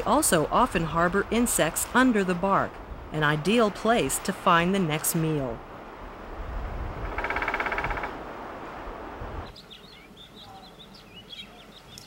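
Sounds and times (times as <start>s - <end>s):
woodpecker rattle: 7.0s - 8.2s
faint high bird chirps: 9.4s - 12.0s.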